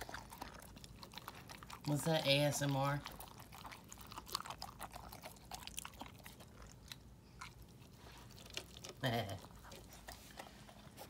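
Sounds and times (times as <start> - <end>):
puppy chewing and crunching kibble: 0.0 - 11.0.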